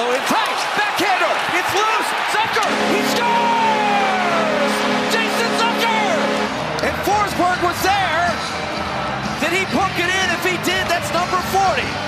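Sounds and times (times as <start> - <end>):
voices over crowd: 0.0 - 8.4
crowd cheering: 0.0 - 12.0
arena goal horn: 2.4 - 7.7
music: 2.8 - 12.0.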